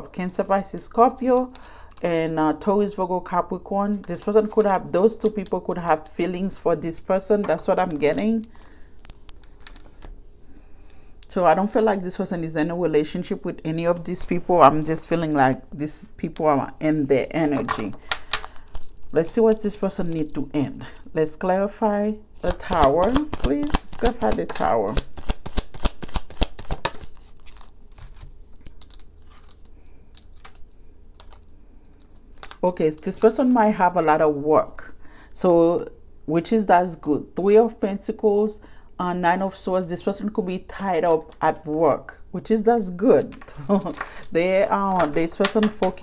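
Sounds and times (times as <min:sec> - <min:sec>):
low room hum: 0:00.0 - 0:46.0
cards tapping: 0:17.5 - 0:18.6, 0:22.4 - 0:27.1, 0:43.2 - 0:46.0
cards being shuffled: 0:22.4 - 0:33.4, 0:43.2 - 0:46.0.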